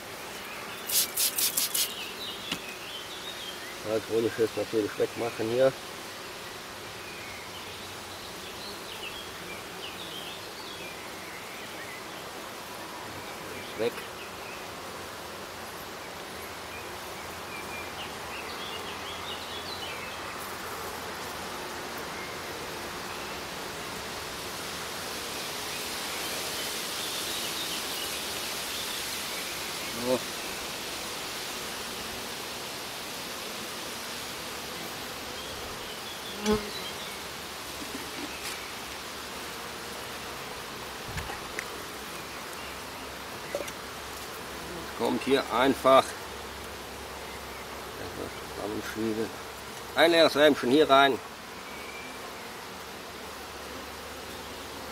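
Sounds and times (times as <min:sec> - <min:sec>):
honeybees buzzing: 0:00.0 - 0:54.9.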